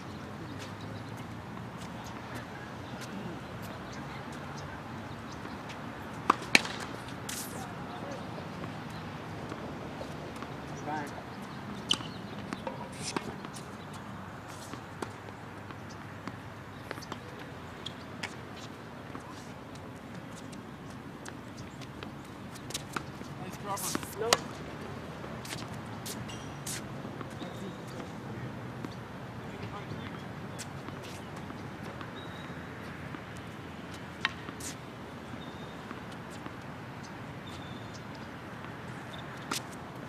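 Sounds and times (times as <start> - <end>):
faint distant voices: 0.0 - 5.8
tennis balls struck and bounced: 0.1 - 40.0.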